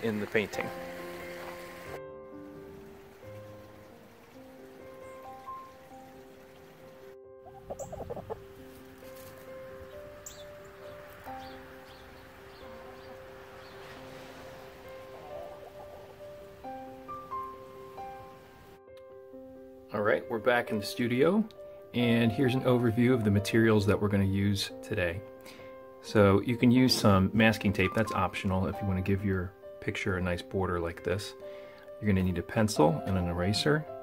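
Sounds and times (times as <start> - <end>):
sustained background music: 0.0 - 34.0
hens clucking: 7.4 - 8.6, 14.5 - 16.9.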